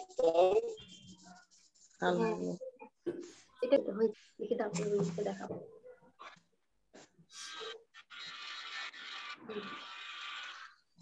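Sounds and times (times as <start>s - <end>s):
colouring stick rubbing paper: 0.0s - 2.2s, 7.0s - 11.0s.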